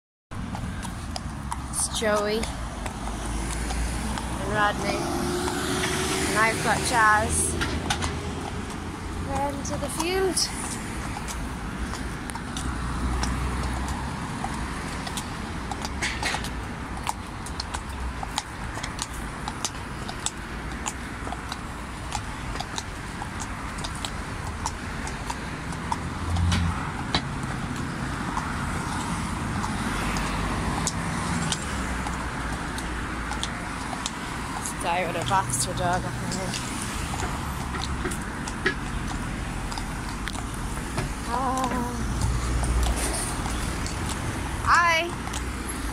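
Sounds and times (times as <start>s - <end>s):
cars passing: 0.4s - 45.9s
horse hooves on concrete: 0.4s - 45.9s.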